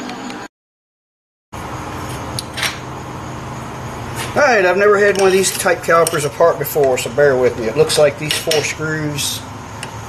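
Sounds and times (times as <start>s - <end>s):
steady low hum: 1.6s - 10.0s.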